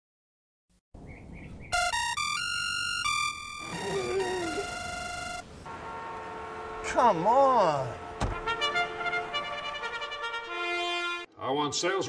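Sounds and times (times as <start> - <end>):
digital alarm clock beeping: 1.7 - 5.4.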